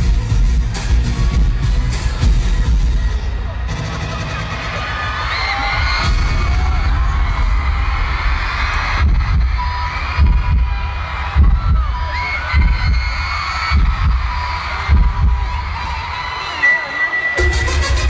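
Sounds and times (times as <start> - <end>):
heavy bass beat: 0.0 - 4.9, 5.7 - 16.4, 17.4 - 18.0
pop music over arena speakers: 0.0 - 18.0
crowd screaming: 2.0 - 18.0.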